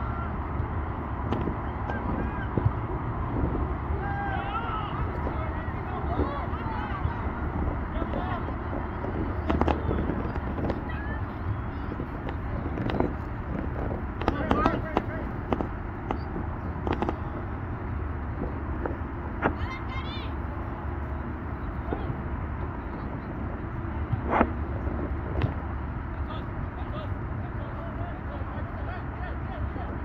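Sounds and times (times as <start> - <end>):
distant shouts and calls: 0.0 - 12.8
steady low rumble: 0.0 - 30.0.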